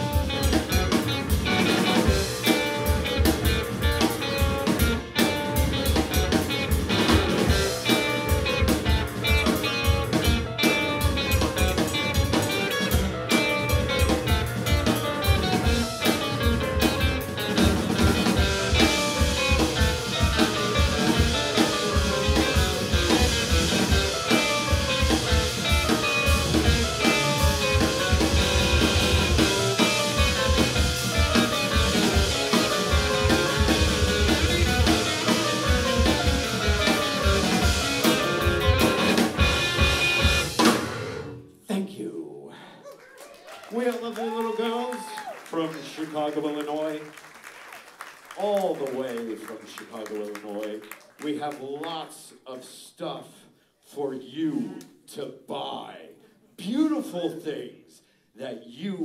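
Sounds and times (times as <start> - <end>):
bass guitar: 0.0 - 41.4
electric guitar riffs: 0.0 - 41.4
drum kit: 0.0 - 41.5.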